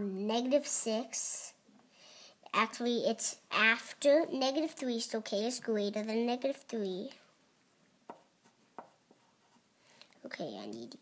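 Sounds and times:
pencil writing on paper: 8.1s - 9.7s.

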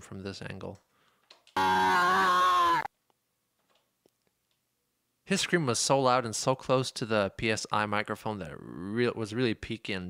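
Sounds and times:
man screaming: 1.6s - 2.9s.

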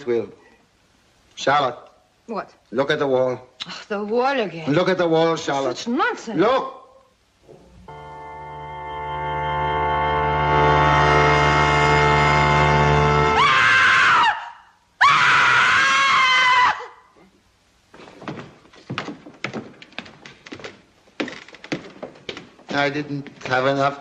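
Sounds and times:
dramatic orchestral chord: 7.8s - 13.4s
woman screaming: 13.4s - 17.1s.

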